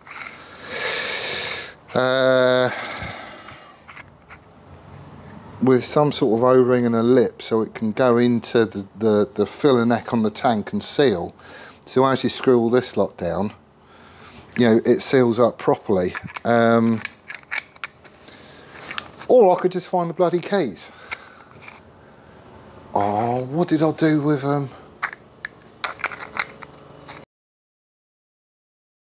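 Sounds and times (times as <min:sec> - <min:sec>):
metal parts clicking and scraping: 0:00.0 - 0:00.4, 0:03.8 - 0:04.5, 0:15.9 - 0:19.4, 0:21.1 - 0:21.9, 0:25.0 - 0:27.2.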